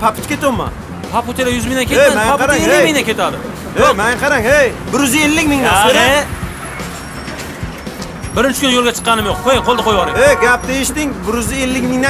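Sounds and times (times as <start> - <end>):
street traffic noise: 0.0 - 12.0
man shouting: 9.2 - 10.7.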